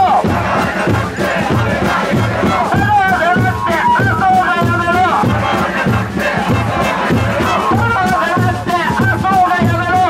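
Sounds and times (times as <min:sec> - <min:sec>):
crowd chanting: 0:00.0 - 0:08.7
amplified voice calling: 0:00.0 - 0:10.0
bass and snare drums beating: 0:00.0 - 0:10.0.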